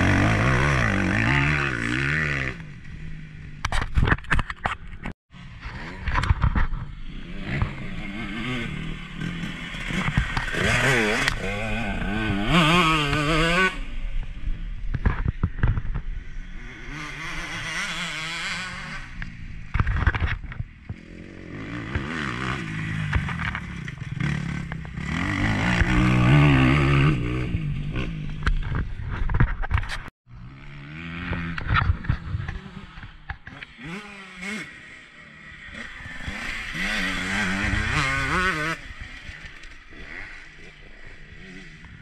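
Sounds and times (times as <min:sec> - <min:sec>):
motorbike engine revving: 0:00.0 - 0:04.0, 0:05.4 - 0:14.1, 0:15.4 - 0:42.0.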